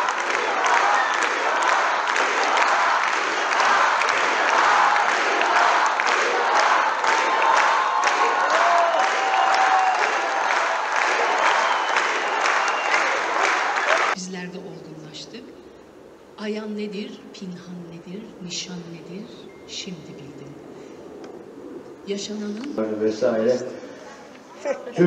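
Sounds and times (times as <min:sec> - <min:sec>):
audience cheering: 0:00.0 - 0:14.2
audience clapping: 0:00.0 - 0:14.2.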